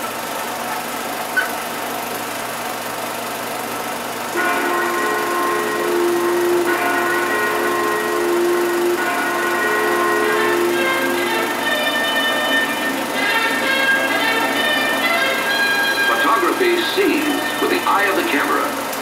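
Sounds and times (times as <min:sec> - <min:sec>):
film projector whirring: 0:00.0 - 0:19.0
sustained orchestral chords: 0:04.3 - 0:18.9.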